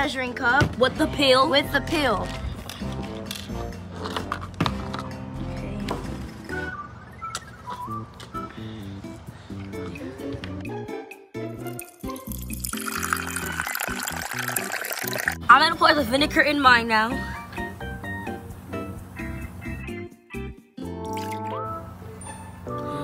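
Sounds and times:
background music: 0:00.0 - 0:23.0
liquid pouring from plastic bottle: 0:12.0 - 0:15.4.

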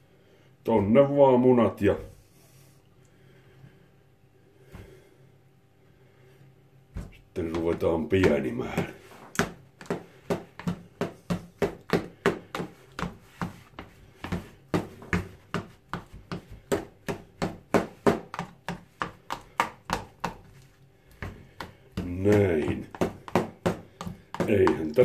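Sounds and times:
knife knocking against plastic bowl: 0:21.2 - 0:25.0.

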